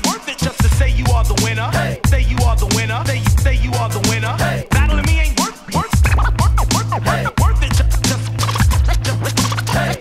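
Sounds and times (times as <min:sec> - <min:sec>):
hip-hop beat: 0:00.0 - 0:10.0
turntable scratching: 0:04.2 - 0:10.0.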